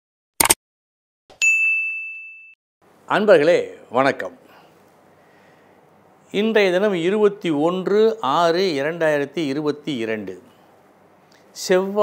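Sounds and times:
notification bell ding: 1.4s - 2.6s.

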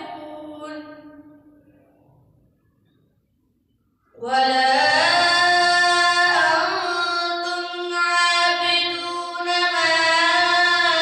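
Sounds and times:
boy reciting melodically: 0.0s - 1.7s, 4.2s - 11.0s.

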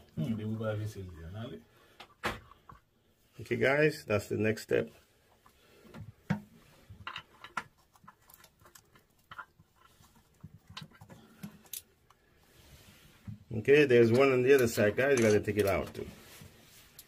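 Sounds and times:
metal nut clicking and scraping: 6.8s - 12.2s.

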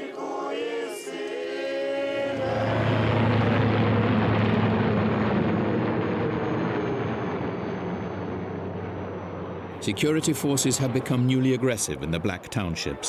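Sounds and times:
helicopter flying overhead: 1.7s - 13.0s.

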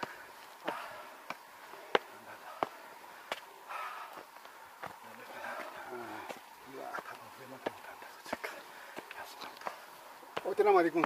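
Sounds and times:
footsteps on stone steps: 0.0s - 11.0s
man talking quietly: 1.6s - 3.0s, 4.9s - 9.8s.

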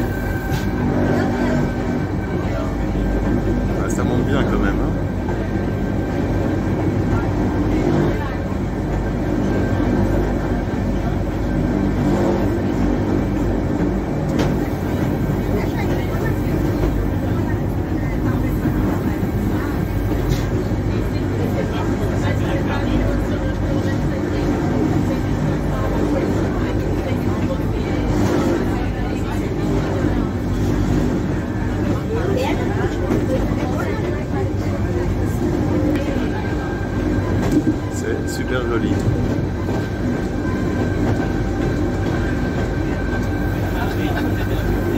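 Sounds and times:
electric train motor humming: 0.0s - 44.9s.

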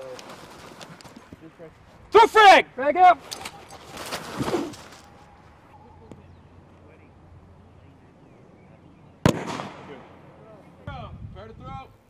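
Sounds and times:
grenade blast: 9.2s - 10.2s.

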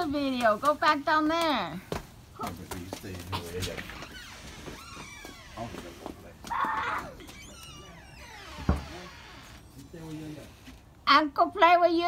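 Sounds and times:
child crying roughly: 6.5s - 7.4s
child whining: 6.5s - 7.4s.

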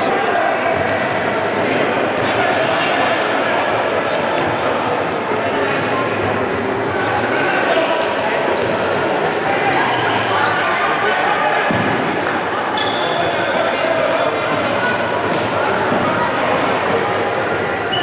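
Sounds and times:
shoes squeaking on wooden court: 12.8s - 13.3s.

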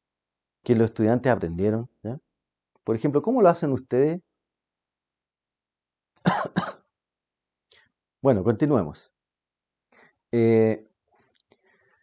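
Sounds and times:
man coughing: 6.2s - 6.8s.

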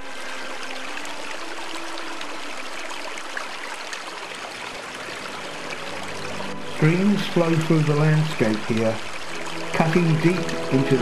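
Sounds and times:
stream flowing over stones: 0.0s - 11.0s.

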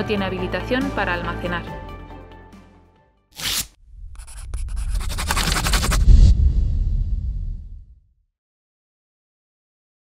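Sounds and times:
scratchy scraping strokes: 3.4s - 6.4s
low rumble: 3.8s - 8.1s
short whoosh: 3.8s - 8.1s.

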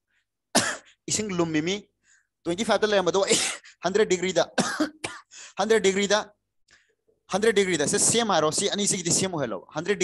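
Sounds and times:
man clearing throat: 0.5s - 1.0s, 3.2s - 3.7s, 4.6s - 5.3s.

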